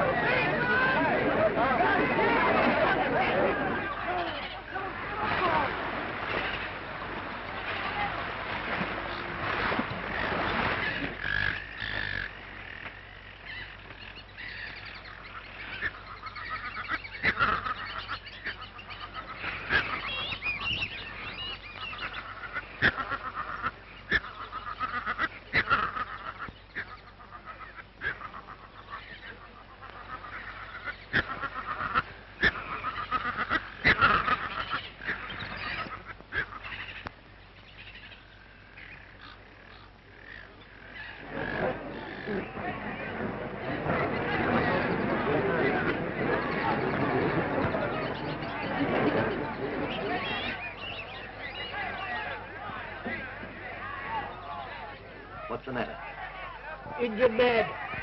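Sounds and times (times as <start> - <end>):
sharp bird calls: 0.0 - 58.0.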